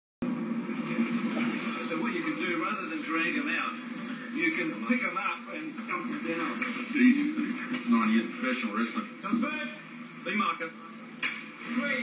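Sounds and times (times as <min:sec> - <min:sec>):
television hum: 0:00.2 - 0:12.0
voices from television: 0:00.2 - 0:12.0.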